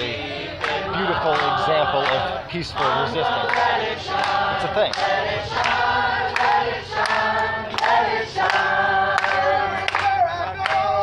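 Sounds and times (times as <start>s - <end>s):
group singing in unison: 0.0s - 11.0s.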